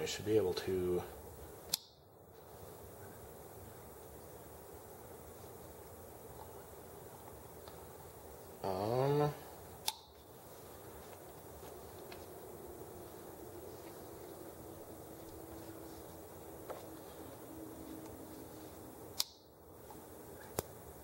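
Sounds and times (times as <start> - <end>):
low room hiss: 0.0 - 21.0
small sharp clicks: 1.7 - 2.0, 9.8 - 10.2, 19.1 - 20.7
man humming: 8.6 - 9.6.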